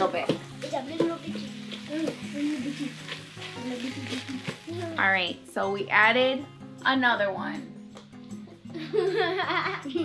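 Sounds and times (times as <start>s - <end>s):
meat and vegetables sizzling: 0.0s - 5.8s
soft background music: 0.0s - 10.0s.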